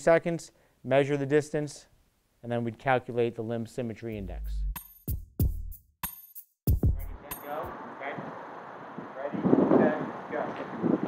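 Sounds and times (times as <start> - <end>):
electronic music drum hits: 4.6 - 7.4
outdoor background noise: 7.2 - 11.0.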